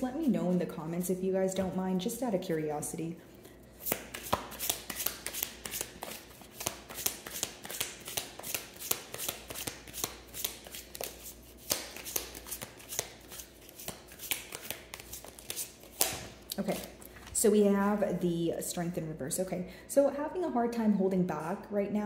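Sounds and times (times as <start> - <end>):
cards being shuffled: 3.8 - 17.2.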